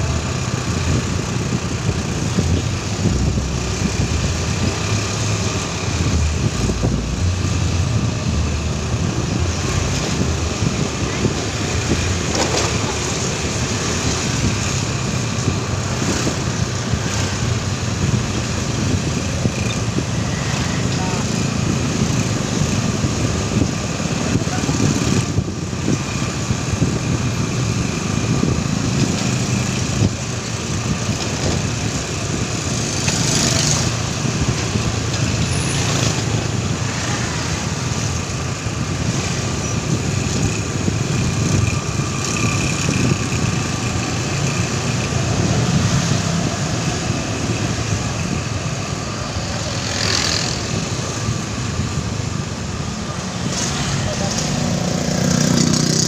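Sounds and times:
low road rumble: 0.0 - 56.0
motorcycle engines running: 0.0 - 56.0.

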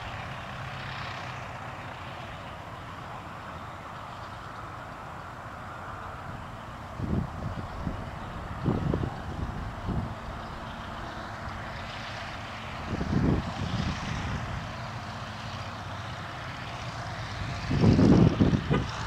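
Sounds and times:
propeller plane engine running: 0.0 - 19.0.

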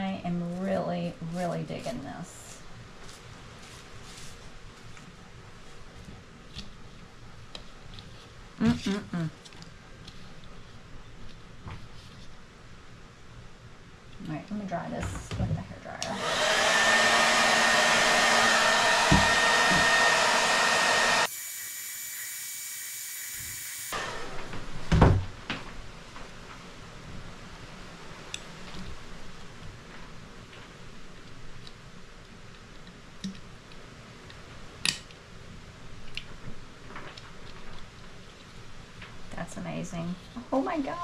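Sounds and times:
blow dryer running: 15.8 - 24.7.

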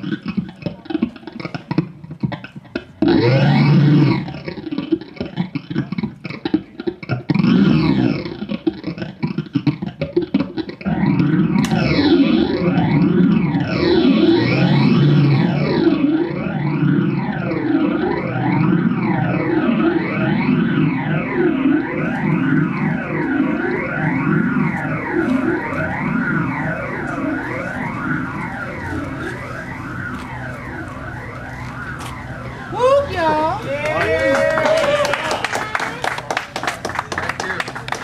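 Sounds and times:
distorted electronic music: 0.0 - 33.4.

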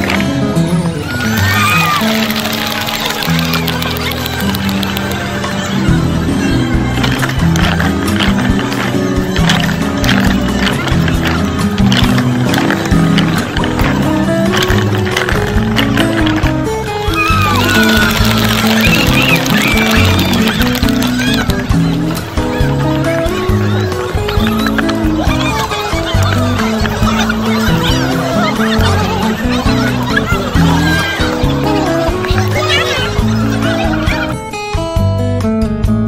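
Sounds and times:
music with sustained notes: 0.0 - 36.0
wooden clogs clacking on pavement: 1.1 - 5.7, 6.6 - 34.3.

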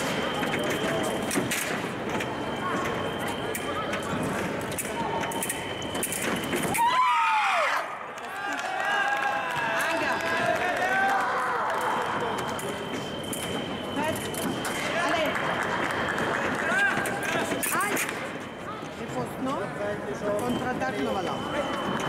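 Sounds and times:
voices: 0.0 - 6.8, 7.8 - 22.0.

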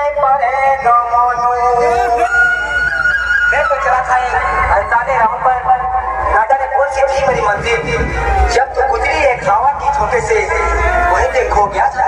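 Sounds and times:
deep bass: 0.8 - 12.0.

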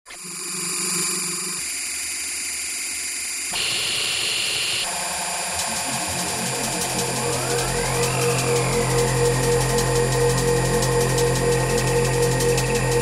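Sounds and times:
synthesized high tones over hiss: 3.6 - 13.0.

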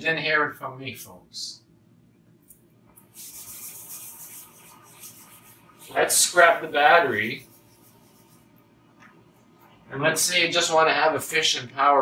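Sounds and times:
eraser rubbing on whiteboard: 3.0 - 8.6.

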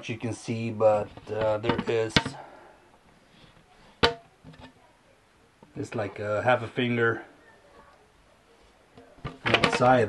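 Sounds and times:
soft handling sounds: 0.0 - 5.0, 5.6 - 10.0.

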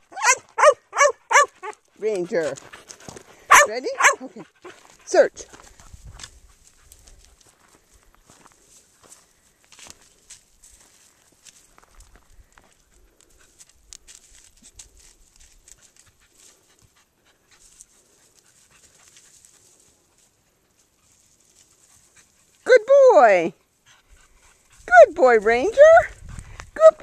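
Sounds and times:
rustling in dry grass: 1.3 - 22.7
person shouting praise: 24.9 - 26.1, 26.8 - 27.0.

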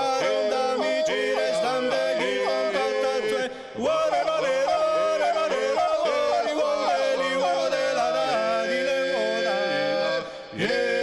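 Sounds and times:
male a cappella choir singing: 0.0 - 11.0.

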